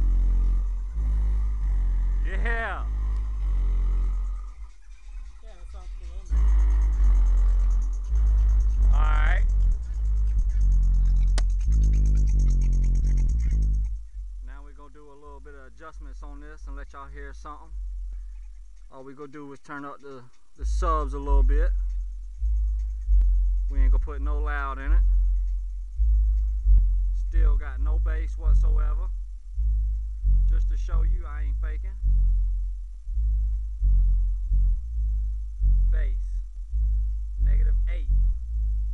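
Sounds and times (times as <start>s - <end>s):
heavy subwoofer bass: 0.0s - 19.3s, 20.1s - 38.9s.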